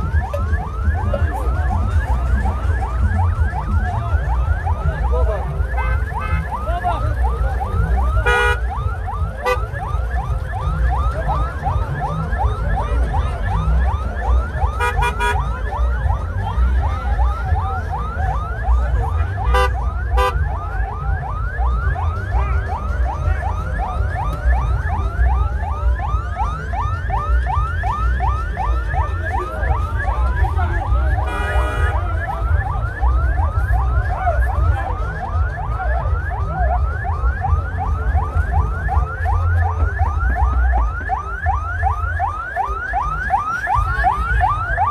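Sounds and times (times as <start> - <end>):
electronic siren whooping: 0.0 - 44.9.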